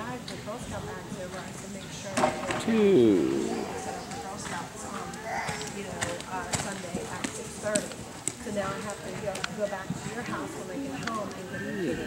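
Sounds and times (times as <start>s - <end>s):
voices talking: 2.5s - 6.7s.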